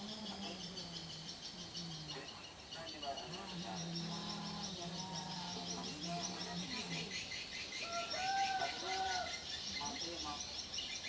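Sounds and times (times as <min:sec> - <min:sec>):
birds chirping: 0:00.0 - 0:11.0
rising and falling bird calls: 0:06.7 - 0:09.8.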